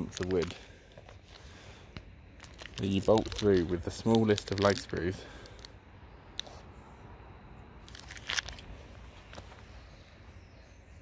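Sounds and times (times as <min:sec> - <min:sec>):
plastic bag crinkling: 0:00.0 - 0:01.5, 0:02.3 - 0:05.7, 0:07.8 - 0:09.5
low steady background noise: 0:00.0 - 0:11.0.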